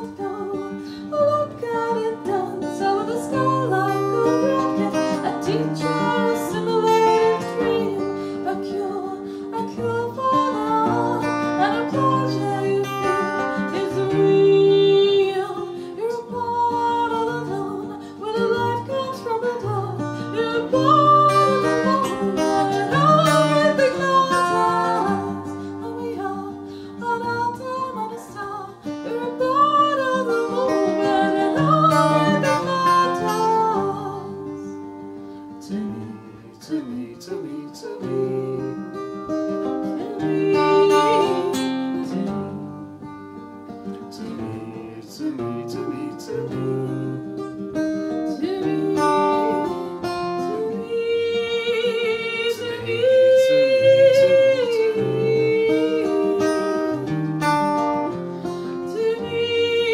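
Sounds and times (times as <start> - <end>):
strummed acoustic guitar: 0.0 - 59.9
woman singing: 0.0 - 59.9.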